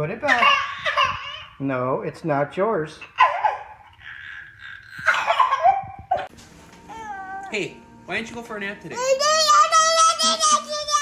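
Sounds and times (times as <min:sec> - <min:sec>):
toddler crying: 0:06.9 - 0:07.5, 0:08.9 - 0:11.0.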